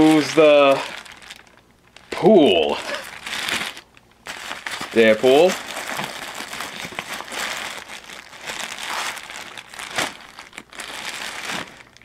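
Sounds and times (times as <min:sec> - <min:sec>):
packaging crinkling and rustling: 0:00.0 - 0:12.0.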